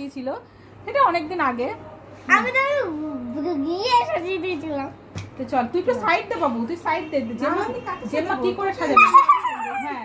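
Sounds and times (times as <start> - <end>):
women and girl laughing: 8.9 - 10.0.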